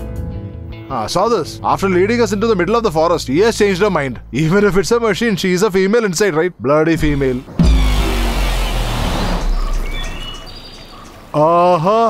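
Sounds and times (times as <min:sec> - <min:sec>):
engine rumble: 0:07.0 - 0:11.3
road noise: 0:07.0 - 0:11.4.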